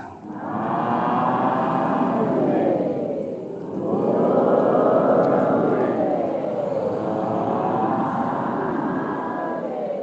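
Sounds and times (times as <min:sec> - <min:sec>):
congregation singing held note: 0:00.0 - 0:10.0.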